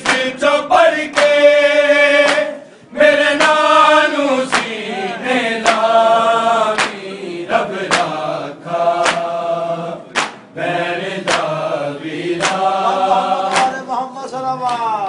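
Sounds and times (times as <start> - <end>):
men chanting in chorus: 0.0 - 14.1
chest-beating slaps: 2.2 - 2.5, 4.4 - 4.8, 5.6 - 5.9, 6.7 - 7.0, 7.8 - 8.2, 9.0 - 9.3, 10.1 - 10.5, 11.2 - 11.6, 12.4 - 12.7, 13.5 - 13.8.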